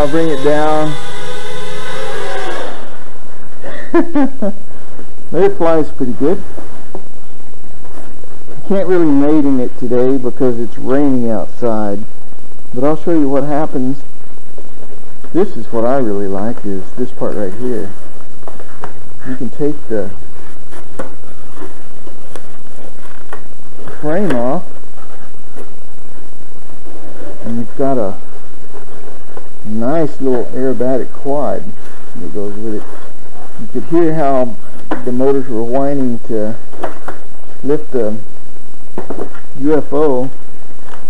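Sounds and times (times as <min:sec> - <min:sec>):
drone motors whining: 0:00.0 - 0:04.3
low hum: 0:00.0 - 0:41.0
steady hiss: 0:00.0 - 0:41.0
person laughing: 0:03.6 - 0:04.6.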